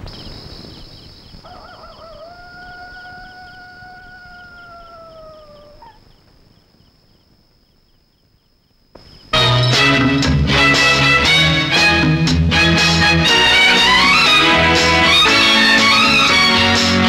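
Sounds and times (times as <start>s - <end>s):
crickets chirping: 0.0s - 9.8s
high insect trill: 0.0s - 9.8s
dog howling: 1.6s - 6.0s.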